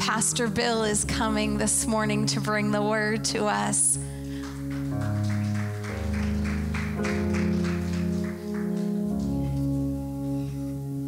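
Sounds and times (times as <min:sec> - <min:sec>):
keyboard and bass chords: 0:00.0 - 0:11.0.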